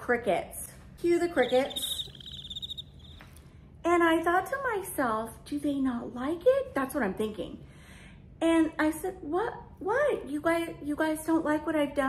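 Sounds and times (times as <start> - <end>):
crickets chirping: 1.2 - 3.3.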